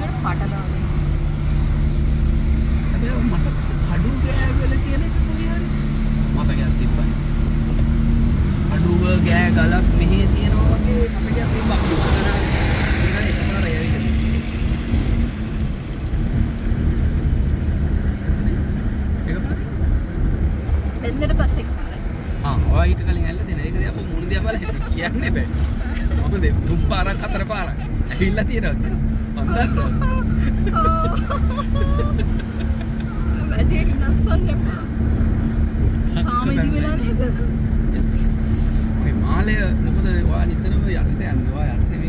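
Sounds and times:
car road and engine rumble: 0.0 - 42.0
constant hum: 14.0 - 42.0
voices and laughter: 24.2 - 34.7.

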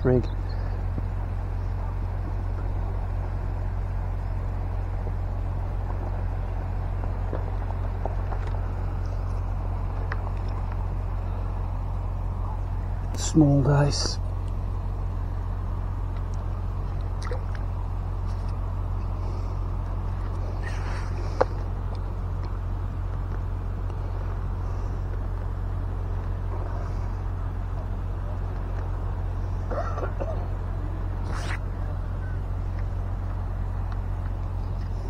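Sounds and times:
outdoor rumble and hiss: 0.0 - 35.0.

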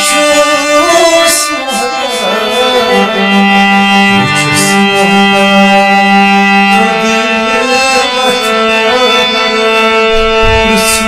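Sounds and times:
harmonium playing chords: 0.0 - 11.0
man singing: 0.0 - 11.0
low rumble: 10.1 - 11.0.

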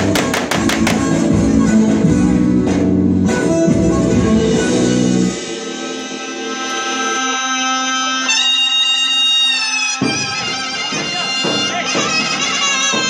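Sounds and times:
drum: 0.0 - 1.5
shawm playing long notes: 0.0 - 1.6.

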